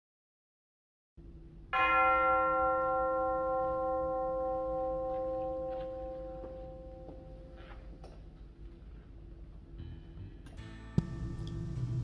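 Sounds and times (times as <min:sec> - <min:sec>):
bell ringing: 0:01.8 - 0:07.7
low hum: 0:04.8 - 0:12.0.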